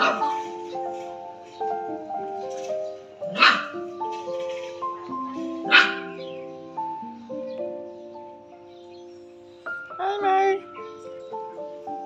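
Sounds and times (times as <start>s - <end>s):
dog barking: 0.0s - 0.5s, 3.3s - 3.8s, 5.6s - 6.3s
background music of held notes: 0.0s - 12.0s.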